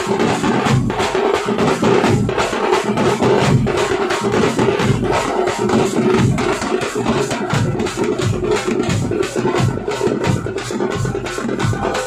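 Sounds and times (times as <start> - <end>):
bass drums beating: 7.4 - 12.0.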